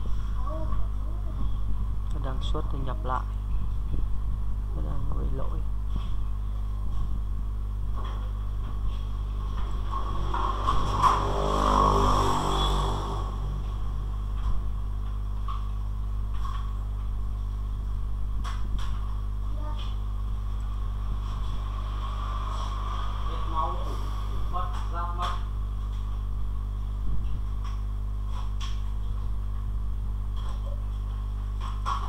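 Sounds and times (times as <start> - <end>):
electrical mains hum: 0.0 - 32.0.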